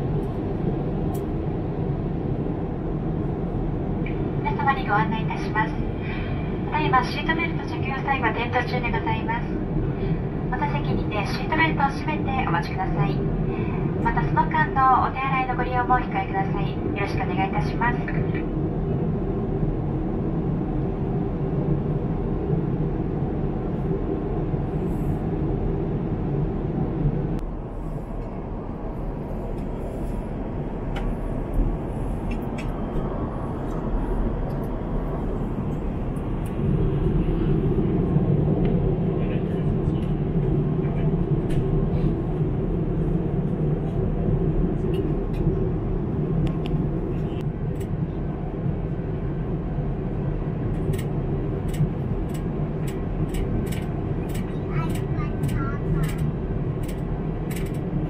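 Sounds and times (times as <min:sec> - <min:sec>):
airliner cabin noise: 0:00.0 - 0:58.0.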